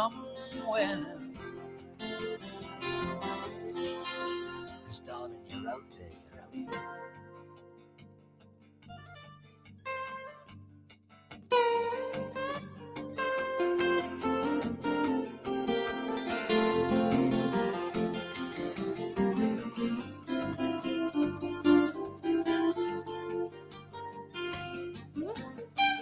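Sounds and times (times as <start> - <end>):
acoustic guitars picking: 0.0 - 26.0.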